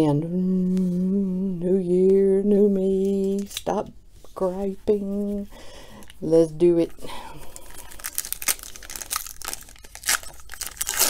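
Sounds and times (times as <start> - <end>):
foil wrappers crinkling: 3.0 - 3.7, 7.4 - 11.0
pack being torn open: 7.8 - 11.0.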